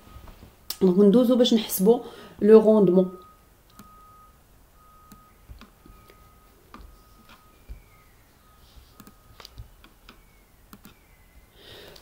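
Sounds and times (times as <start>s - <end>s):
high electronic beep: 2.9s - 9.4s.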